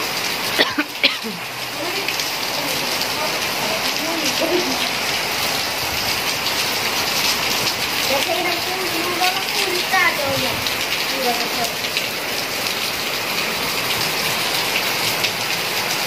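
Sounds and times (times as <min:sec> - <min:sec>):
heavy rain on wet paving: 0:00.0 - 0:16.0.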